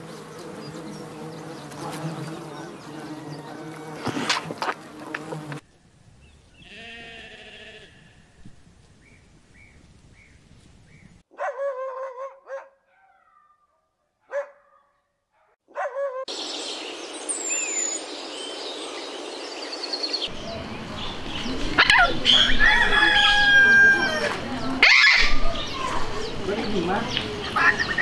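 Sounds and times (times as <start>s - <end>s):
steady outdoor hiss: 0.0s - 11.2s, 16.3s - 28.0s.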